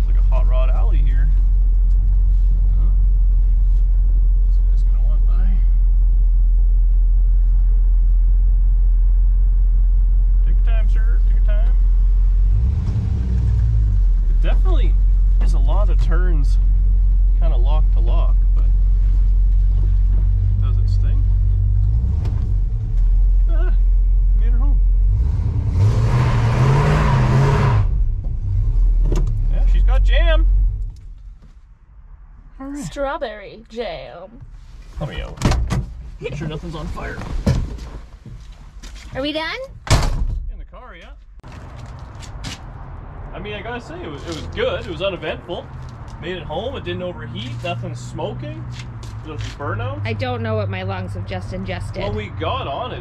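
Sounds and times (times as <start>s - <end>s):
car engine rumbling: 0.0s - 53.0s.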